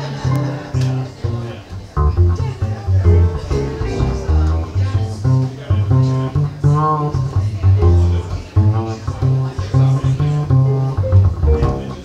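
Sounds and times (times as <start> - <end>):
piano chords: 0.0 - 5.7, 10.8 - 12.0
plucked upright bass: 0.0 - 12.0.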